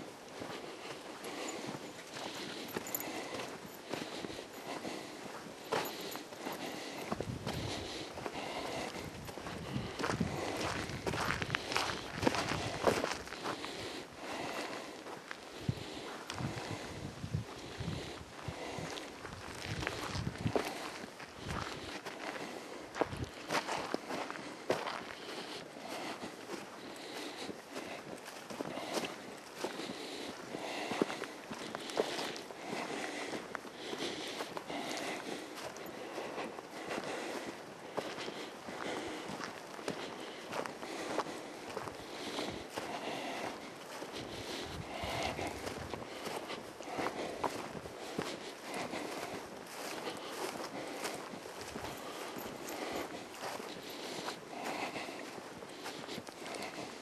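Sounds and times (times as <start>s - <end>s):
footsteps walking outdoors: 0.0s - 57.0s.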